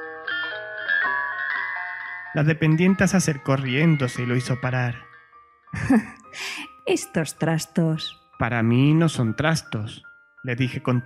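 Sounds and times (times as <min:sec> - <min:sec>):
toy carousel music-box tune: 0:00.0 - 0:02.4.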